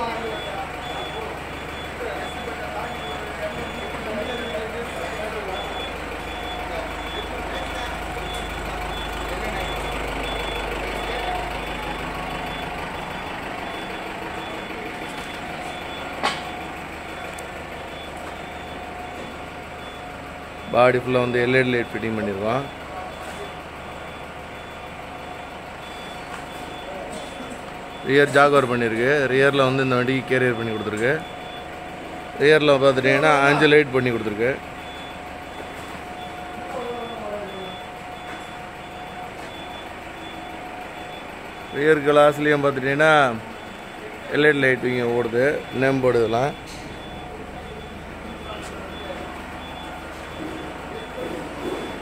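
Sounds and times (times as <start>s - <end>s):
bus engine idling: 0.0s - 52.0s
reversing beeper beeps: 0.0s - 52.0s.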